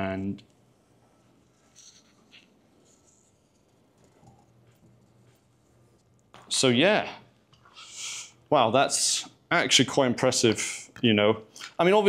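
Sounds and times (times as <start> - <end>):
marker pen scratching paper: 1.4 - 6.2.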